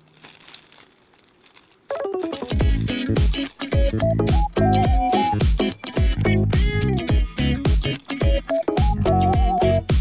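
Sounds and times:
plastic bag crinkling: 0.0 - 3.8
music: 1.9 - 10.0.

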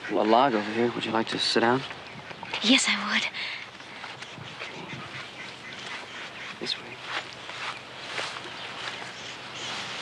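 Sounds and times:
ducks quacking: 0.0 - 1.6, 4.0 - 10.0.

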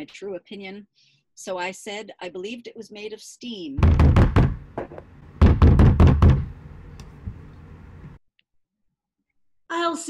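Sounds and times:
knocking on a door: 3.8 - 6.6.

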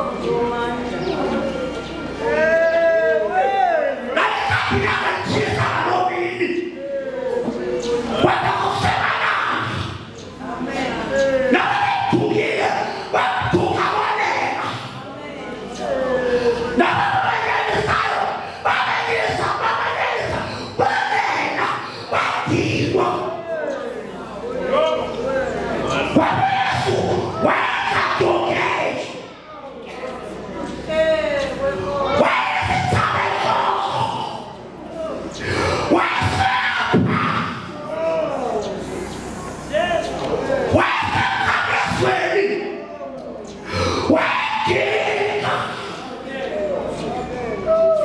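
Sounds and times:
man shouting through microphone: 2.2 - 10.1, 10.8 - 15.2, 15.8 - 24.0, 24.6 - 29.4, 30.8 - 38.7, 39.7 - 43.1, 43.7 - 48.0.

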